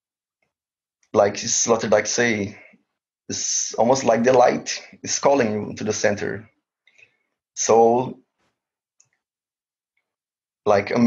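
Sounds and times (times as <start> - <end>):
person speaking: 1.2 - 2.7, 3.3 - 6.5.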